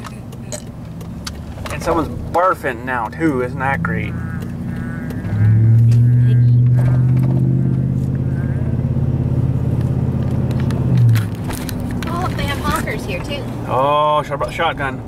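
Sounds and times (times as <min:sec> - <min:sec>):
vehicle engine droning: 0:00.0 - 0:15.0.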